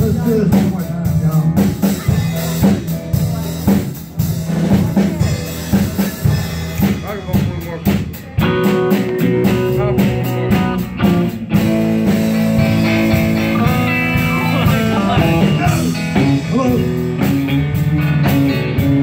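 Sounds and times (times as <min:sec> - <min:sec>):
drum kit beat: 0:00.0 - 0:19.0
electric guitar: 0:00.0 - 0:19.0.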